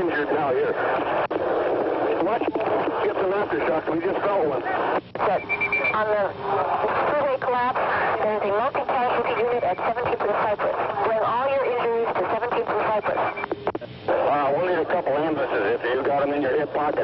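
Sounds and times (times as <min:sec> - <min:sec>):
voices talking over radio: 0:00.0 - 0:17.0.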